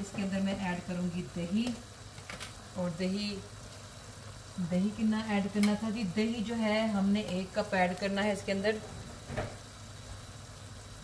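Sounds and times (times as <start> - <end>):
appliance humming: 0.0 - 11.0.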